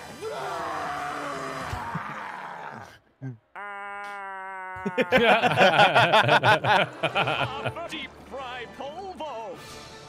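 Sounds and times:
creature growling: 0.8 - 5.9.

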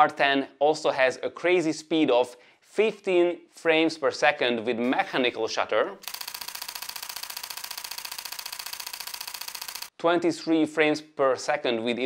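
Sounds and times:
camera shutter burst: 6.0 - 9.9.

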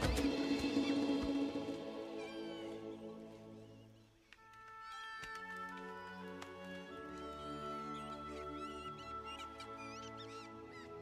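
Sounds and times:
high-pitched animal calls: 7.8 - 11.0.

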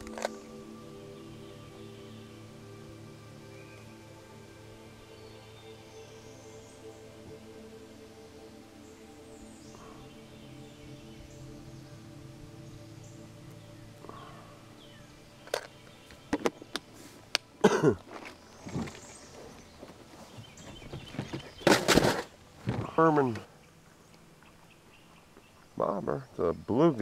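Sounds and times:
soft background music: 0.0 - 27.0.

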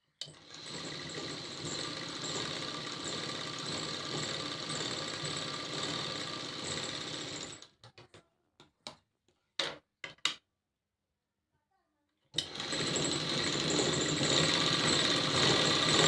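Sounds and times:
sewing machine running: 0.2 - 7.7, 12.4 - 16.0.

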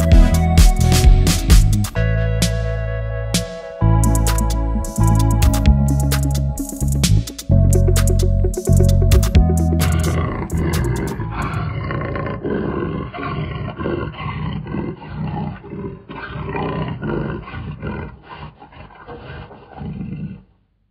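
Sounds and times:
big cat roaring: 9.8 - 20.6.

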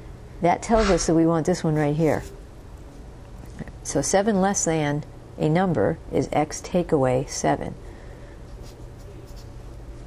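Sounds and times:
low steady hum: 0.0 - 8.6.

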